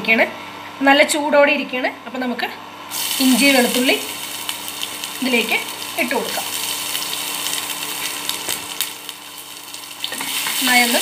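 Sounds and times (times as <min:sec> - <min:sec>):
ginger sizzling in hot oil: 0:02.9 - 0:11.0.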